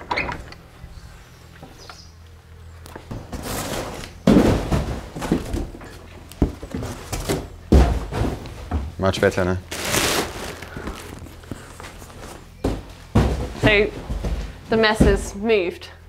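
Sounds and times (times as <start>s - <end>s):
knocks and thuds: 3.1s - 9.3s, 12.2s - 15.4s
clutter rustling: 3.1s - 15.3s.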